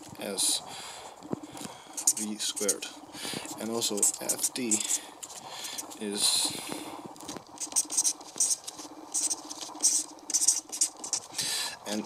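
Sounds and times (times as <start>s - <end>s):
marker squeaking on paper: 1.4s - 6.1s, 7.2s - 11.5s.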